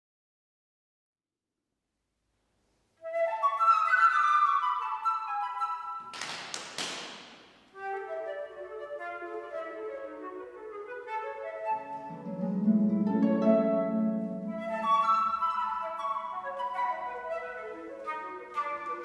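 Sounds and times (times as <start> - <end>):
flute playing tango melody: 3.0 - 6.1, 7.7 - 19.0
harp low plucked notes: 12.1 - 14.9.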